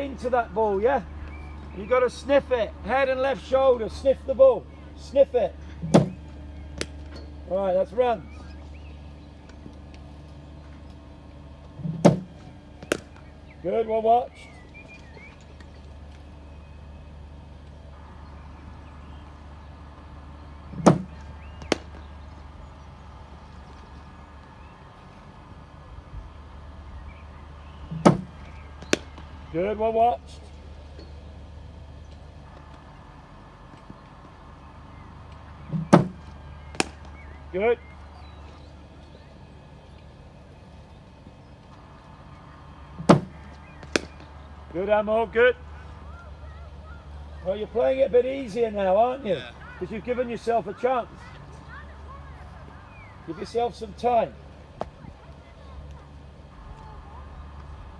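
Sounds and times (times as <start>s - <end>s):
low hum: 0.0s - 57.9s
bat cracking ball: 5.8s - 6.2s, 6.8s - 7.1s, 11.9s - 13.3s, 20.8s - 22.0s, 27.9s - 29.3s, 35.7s - 37.2s, 43.0s - 44.3s
bowling machine firing thump: 5.8s - 6.2s, 11.8s - 13.1s, 20.8s - 21.8s, 27.9s - 28.3s, 35.7s - 36.2s, 43.0s - 44.2s.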